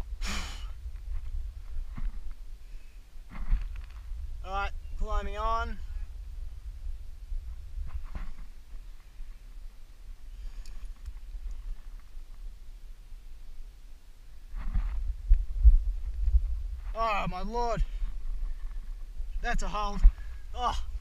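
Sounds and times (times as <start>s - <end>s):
wind buffeting microphone: 0.0s - 2.6s, 3.2s - 12.4s, 14.5s - 21.0s
person breathing hard: 0.2s - 0.8s.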